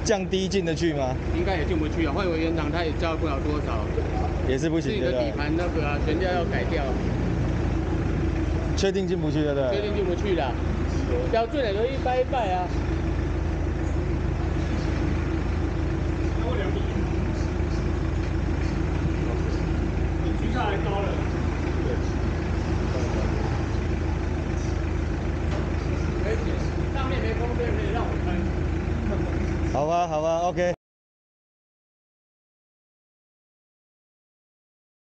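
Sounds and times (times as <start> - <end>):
person speaking: 0.0 - 7.0
van engine idling: 0.0 - 30.8
faint voices: 8.1 - 29.9.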